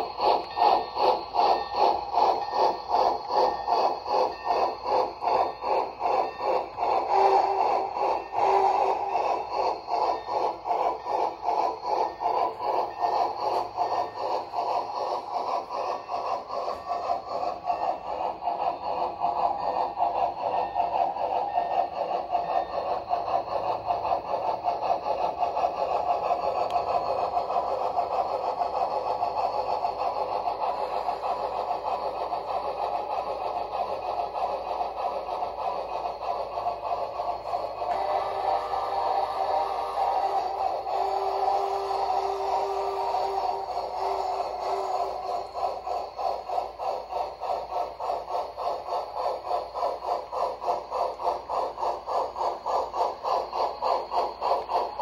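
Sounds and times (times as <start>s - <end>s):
model steam locomotive chuffing: 0.0s - 55.0s.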